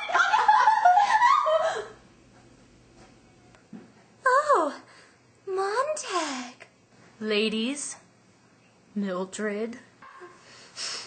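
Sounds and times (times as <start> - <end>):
young women laughing: 0.0 - 2.0.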